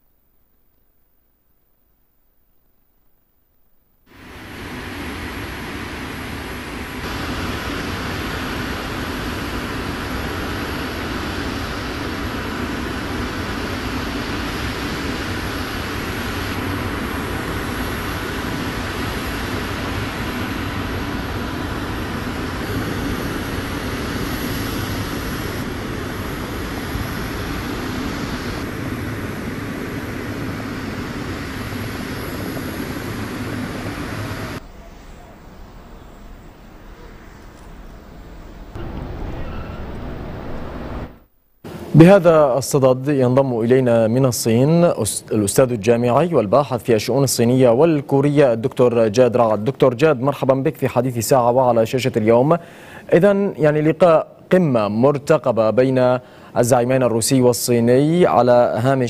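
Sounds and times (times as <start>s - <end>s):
aircraft engine noise: 4.1s - 54.0s.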